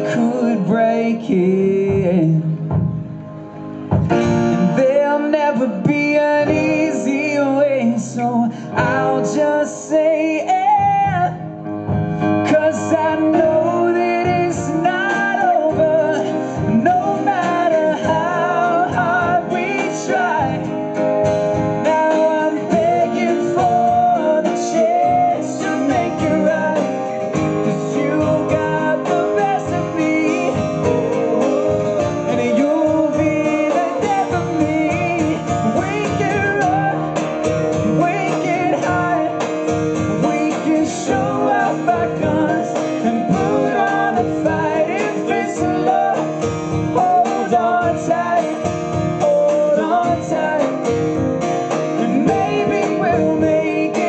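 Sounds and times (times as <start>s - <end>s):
man singing: 0.0s - 3.2s, 4.1s - 54.0s
band playing pop-rock: 0.0s - 54.0s
strummed acoustic guitar: 0.0s - 54.0s.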